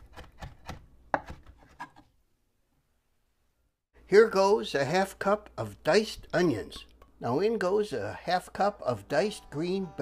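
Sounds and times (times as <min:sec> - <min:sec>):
knife chopping on wooden board: 0:00.0 - 0:02.0.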